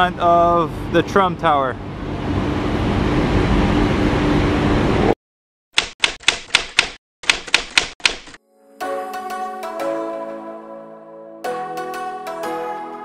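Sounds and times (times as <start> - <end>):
typewriter keystroke clicks: 5.8 - 8.4
music: 8.4 - 13.0.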